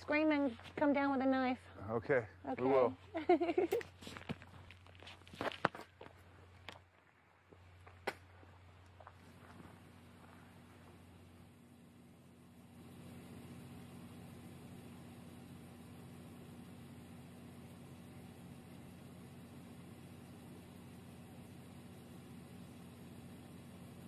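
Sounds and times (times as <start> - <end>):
faint hum: 0.0 - 24.0
steady low hiss: 0.0 - 24.0.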